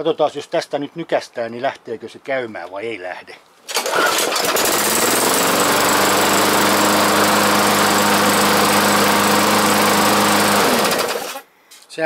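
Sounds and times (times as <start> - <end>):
lawn mower engine running: 3.7 - 11.4.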